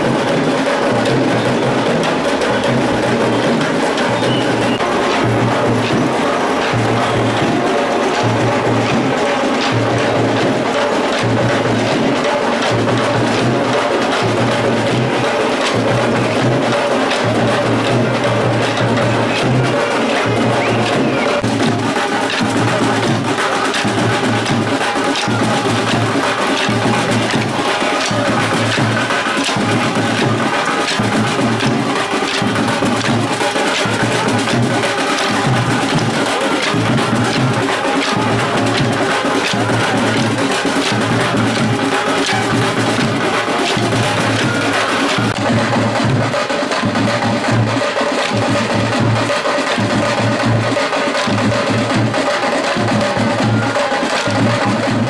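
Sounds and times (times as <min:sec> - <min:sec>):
pulsing drum beat: 0:00.0 - 0:55.0
wooden sticks clacking: 0:19.4 - 0:45.5.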